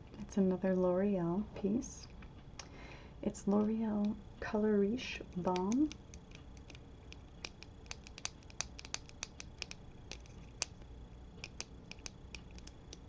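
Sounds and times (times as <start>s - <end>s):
fingernails tapping on plastic: 5.4s - 10.8s, 11.4s - 13.0s.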